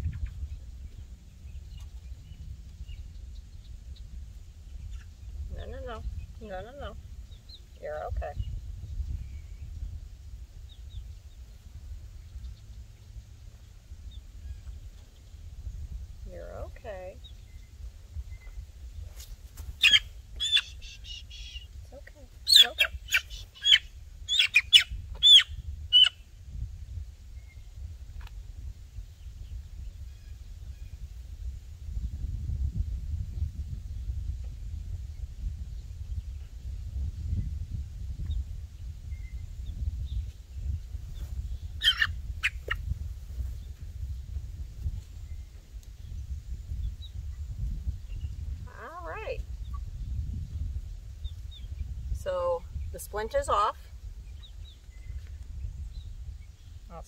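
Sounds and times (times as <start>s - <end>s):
chick distress calls: 19.8s - 26.1s, 41.8s - 42.8s.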